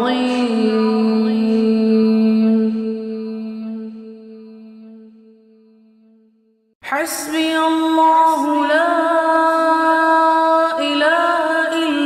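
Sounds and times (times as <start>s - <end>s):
person chanting: 0.0s - 5.3s, 6.9s - 12.0s.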